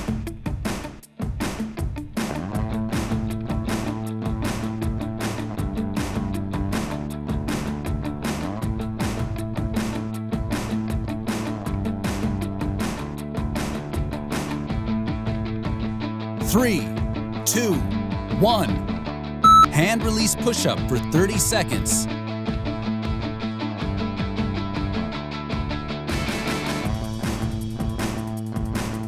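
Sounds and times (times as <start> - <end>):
rock music drum beat: 0.0 - 15.8, 26.1 - 29.0.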